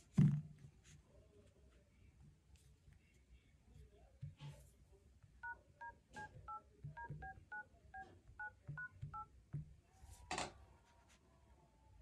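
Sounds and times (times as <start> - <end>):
touch-tone keypad beeps: 5.4 - 9.3.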